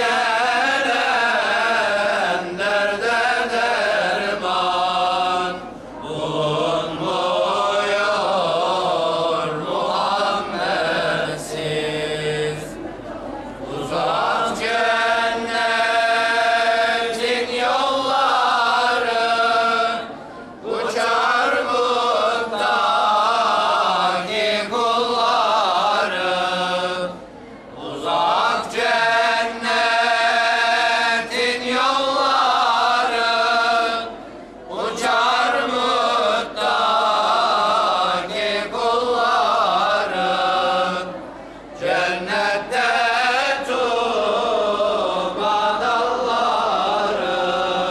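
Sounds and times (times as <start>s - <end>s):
voices chanting: 0.0s - 47.9s.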